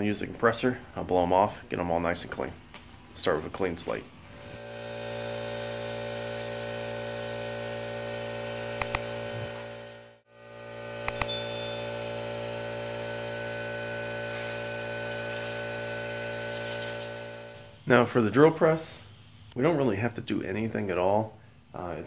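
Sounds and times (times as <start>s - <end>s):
short click: 11.1s - 11.4s
bright bell-like ding: 11.1s - 12.3s.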